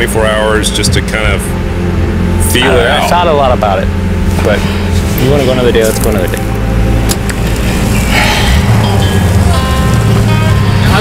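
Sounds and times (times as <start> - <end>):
background music: 0.0 - 11.0
utility vehicle engine running: 0.0 - 11.0.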